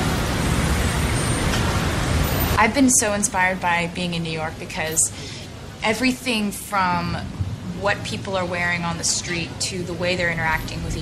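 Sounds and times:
loud rushing noise: 0.0s - 2.6s.

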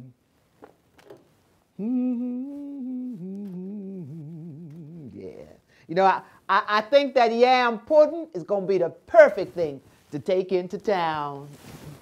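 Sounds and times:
woman humming: 0.0s - 0.2s, 1.8s - 5.6s.

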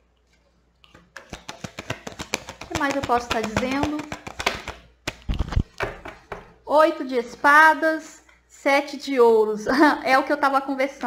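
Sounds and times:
cards shuffling and snapping: 0.9s - 6.3s.

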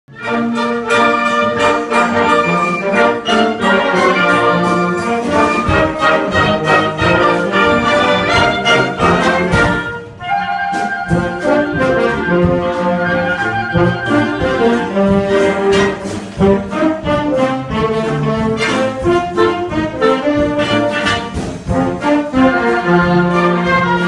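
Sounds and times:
wind band playing: 0.1s - 24.0s.

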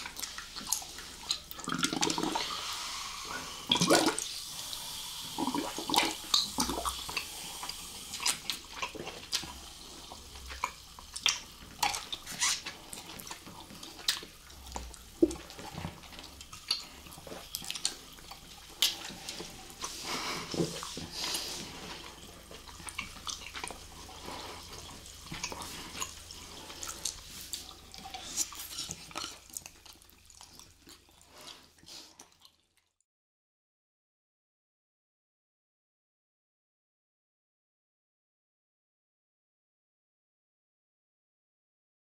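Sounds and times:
slurping drinks through straws: 0.0s - 32.4s.

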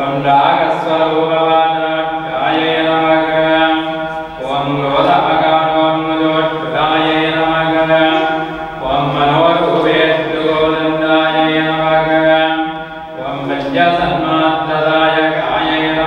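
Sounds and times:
man chanting mantras: 0.0s - 16.0s.

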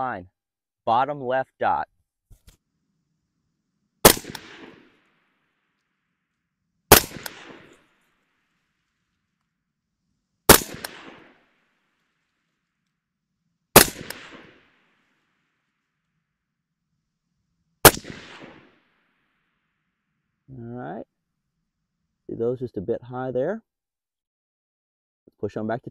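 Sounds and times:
suppressed rifle shots: 4.0s - 5.1s, 6.9s - 7.9s, 10.5s - 11.6s, 13.7s - 14.9s, 17.8s - 18.8s.

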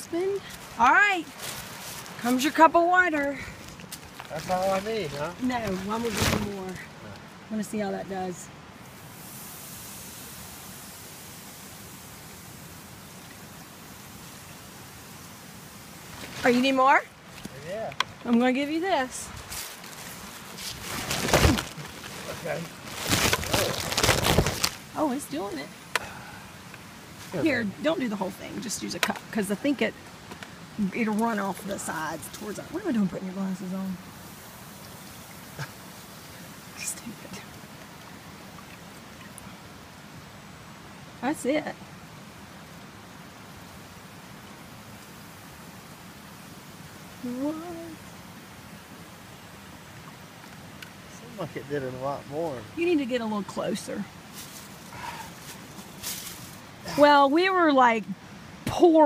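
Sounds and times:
water hissing on hot rocks: 0.0s - 59.0s
plastic tarp rustling: 0.4s - 2.6s, 3.4s - 6.9s, 16.1s - 17.8s, 19.3s - 25.1s, 54.3s - 57.0s.

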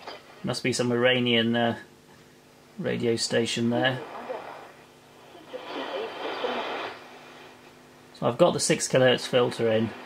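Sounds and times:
radio hiss and static: 2.8s - 10.0s
faint radio voice: 3.8s - 7.0s.

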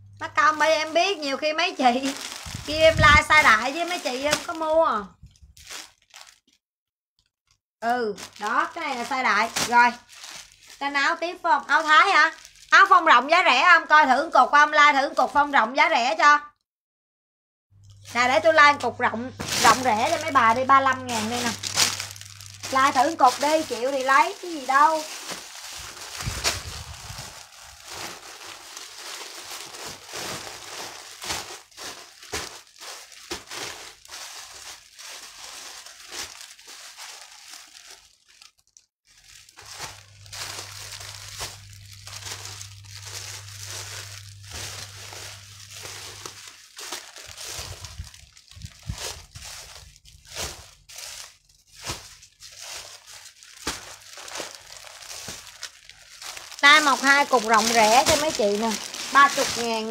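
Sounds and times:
plastic packaging crinkling: 0.3s - 6.6s, 7.8s - 13.7s, 17.8s - 59.9s
low steady hum: 39.7s - 50.8s.

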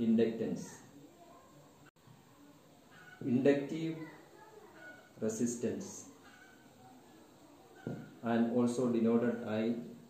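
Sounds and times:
marker squeaking on whiteboard: 6.2s - 6.7s.

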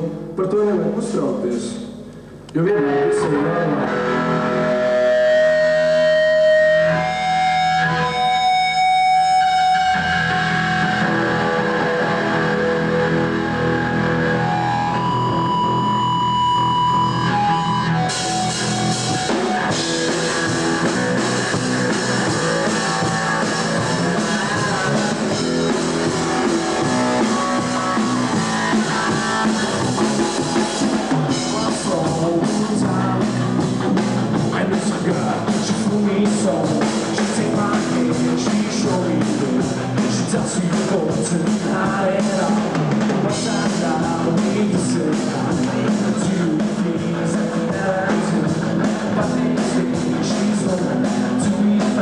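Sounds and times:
bass guitar: 0.0s - 52.0s
electric guitar: 1.9s - 52.0s
drum kit with cymbals: 17.3s - 52.0s.

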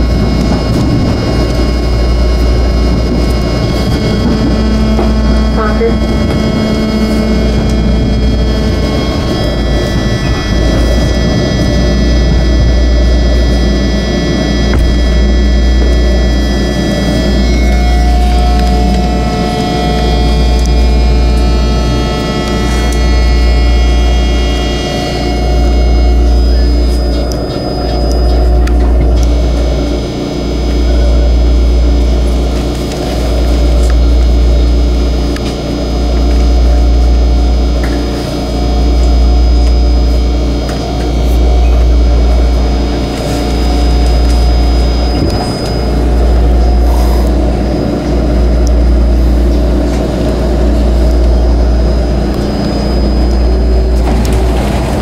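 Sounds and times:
heavy low train rumble: 0.0s - 55.0s
high whine of steady tones: 0.0s - 55.0s.

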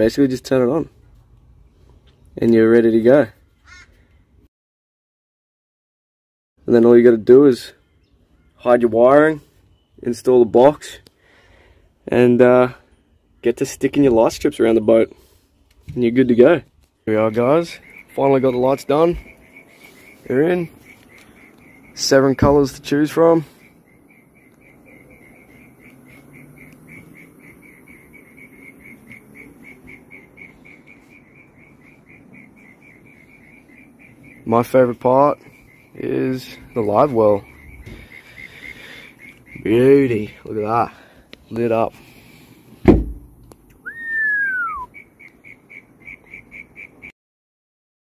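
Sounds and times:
insect chirping: 17.3s - 41.2s, 41.9s - 47.1s
brief bump: 42.8s - 43.4s
gliding whistle: 43.8s - 45.0s.

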